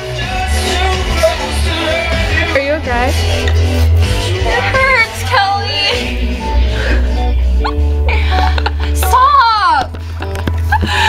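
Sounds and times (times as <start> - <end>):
music with heavy bass: 0.0 - 11.0.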